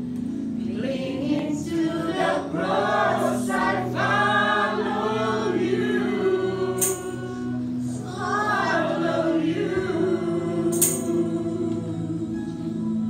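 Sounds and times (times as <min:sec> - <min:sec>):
small choir singing: 0:00.5 - 0:13.0.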